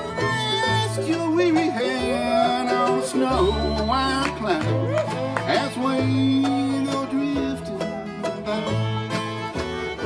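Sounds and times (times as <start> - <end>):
person singing: 0.0 - 9.0
acoustic guitar strumming: 0.0 - 10.0
bluegrass band playing: 0.0 - 10.0
sliding lead instrument: 0.0 - 10.0
upright bass: 0.0 - 10.0.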